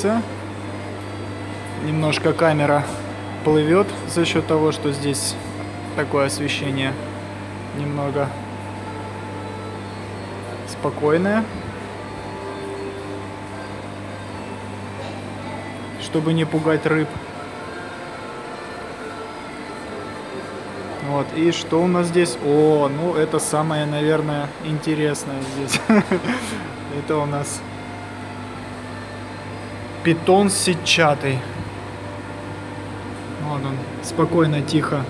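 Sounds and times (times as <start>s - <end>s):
low mechanical hum: 0.0s - 35.0s.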